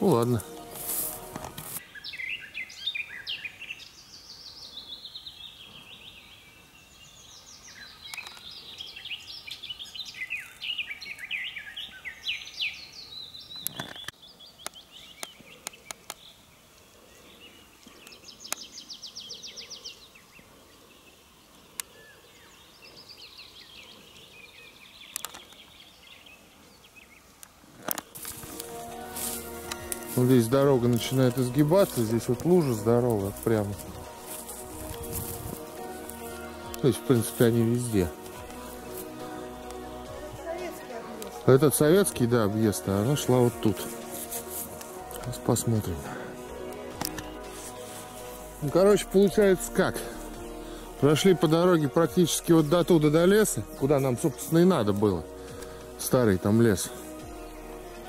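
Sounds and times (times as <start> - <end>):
songbirds chirping and trilling: 0.0 - 58.0.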